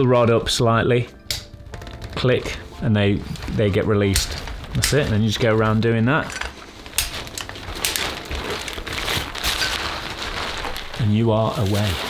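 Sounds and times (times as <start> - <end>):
fabric rustling: 1.6 - 12.0.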